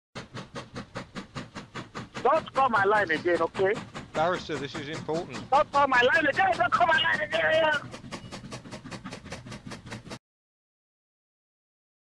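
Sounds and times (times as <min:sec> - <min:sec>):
steam locomotive chugging: 0:00.2 - 0:10.2.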